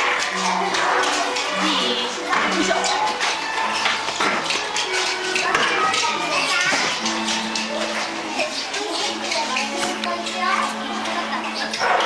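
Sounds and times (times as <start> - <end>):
background music: 0.0 - 12.0
children chattering and calling out: 0.0 - 12.0.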